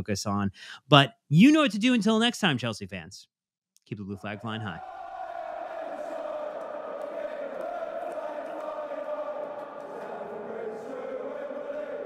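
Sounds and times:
many voices chanting: 4.2s - 12.0s.

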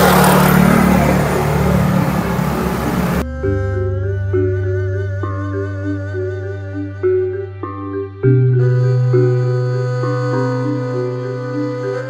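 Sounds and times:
motor scooter passing: 0.0s - 3.3s
soft instrumental music: 0.0s - 12.0s.

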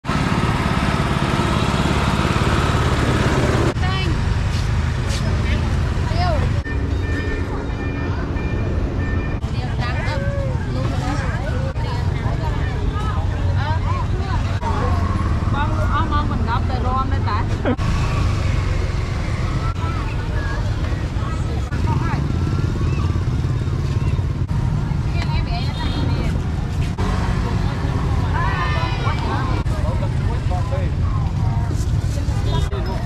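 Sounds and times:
road traffic rumble: 0.0s - 33.0s
people talking: 3.7s - 4.2s, 5.1s - 8.8s, 9.4s - 17.8s, 19.4s - 24.2s, 24.8s - 33.0s.

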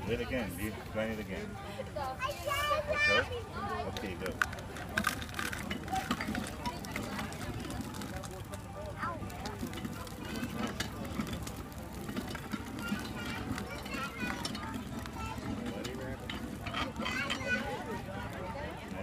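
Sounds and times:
voices in background: 0.0s - 19.0s
hand-cranked corn grinder grinding: 3.9s - 19.0s.

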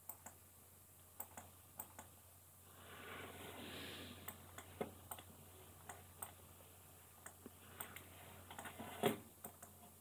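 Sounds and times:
computer mouse clicks: 0.0s - 0.4s, 1.2s - 2.1s, 4.2s - 6.4s, 9.4s - 9.9s.

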